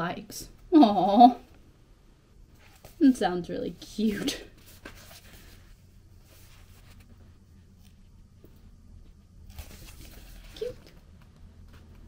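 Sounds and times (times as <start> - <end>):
low steady hum: 0.0 - 12.0
book pages rustling: 2.5 - 3.1, 4.1 - 8.6, 9.5 - 12.0.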